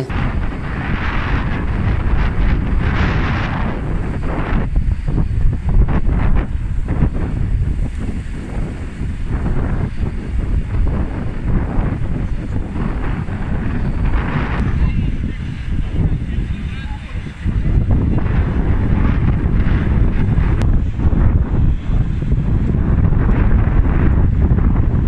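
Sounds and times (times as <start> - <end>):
wind buffeting microphone: 0.0 - 25.0.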